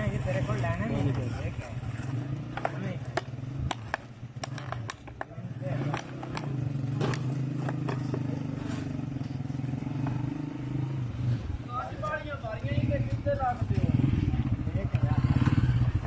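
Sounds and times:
motorcycle engine passing: 0.0 - 16.0.

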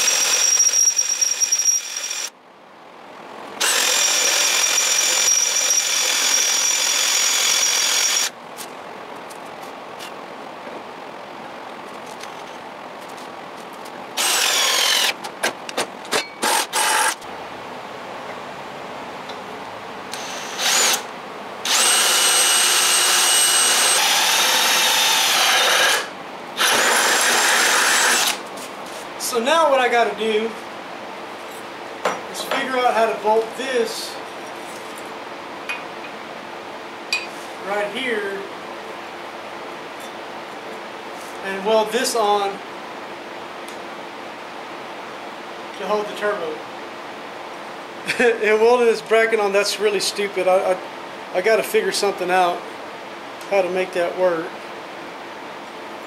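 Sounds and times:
cordless drill boring steel: 0.0 - 2.3, 3.6 - 8.3, 14.2 - 15.2, 16.4 - 17.2, 20.1 - 28.4.

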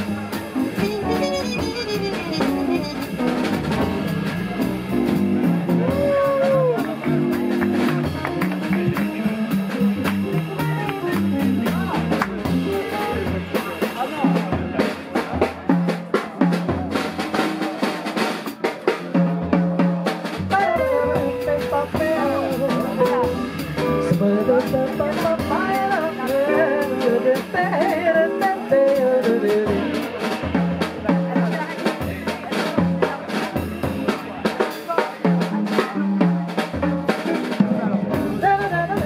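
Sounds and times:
stepping bass line: 0.0 - 13.2
guitar: 0.0 - 13.5, 20.5 - 30.5
drum kit with snare and cymbals: 0.0 - 39.0.

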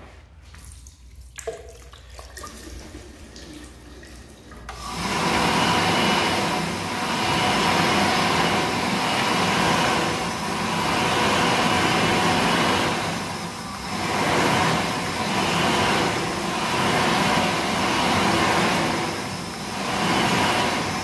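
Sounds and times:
hand dryer blowing loudly: 4.5 - 21.0.

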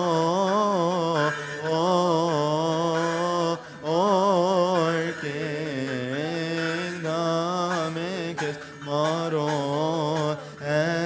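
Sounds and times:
man chanting a hymn: 0.0 - 11.0.

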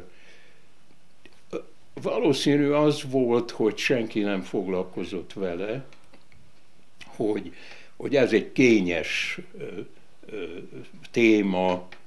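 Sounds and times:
soft breath: 0.0 - 0.8, 7.5 - 8.0.

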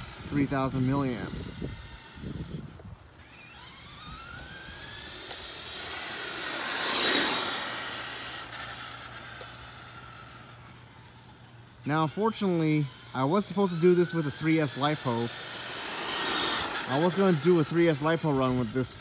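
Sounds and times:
toy truck motor whining: 0.0 - 19.0.

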